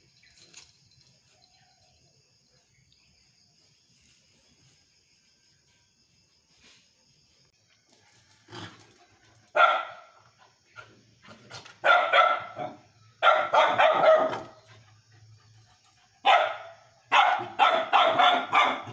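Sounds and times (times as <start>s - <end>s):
small dogs barking: 9.5s - 14.9s, 15.8s - 18.9s.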